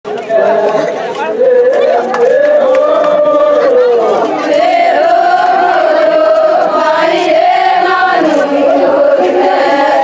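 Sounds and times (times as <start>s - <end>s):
crowd talking: 0.0s - 10.0s
women singing folk song: 4.4s - 10.0s.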